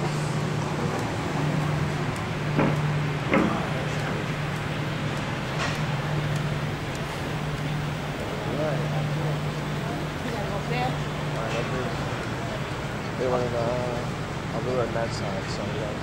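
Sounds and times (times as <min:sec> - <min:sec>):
rushing wind on ship deck: 0:00.0 - 0:14.8
short knocks: 0:02.5 - 0:04.3.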